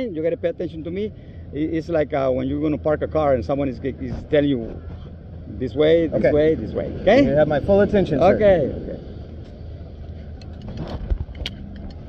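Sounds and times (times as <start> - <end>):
steady low rumble: 0.0 - 12.0
harness rings and carabiner clicking: 10.3 - 12.0.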